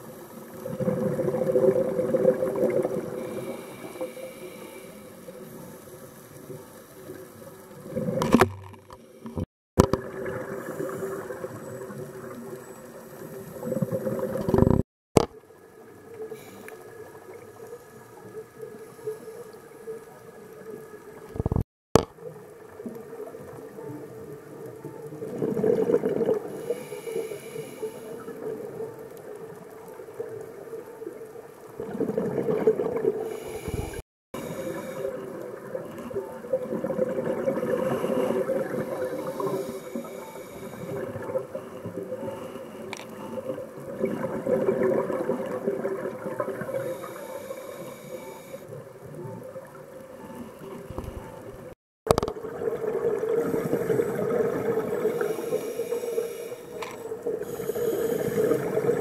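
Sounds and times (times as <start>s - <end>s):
regulator bubbles gurgling: 0.0s - 3.7s, 9.8s - 14.8s, 20.5s - 27.0s, 28.2s - 59.0s.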